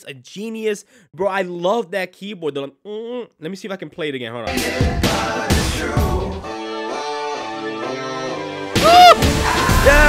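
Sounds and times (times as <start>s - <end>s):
full beat: 8.8s - 10.0s.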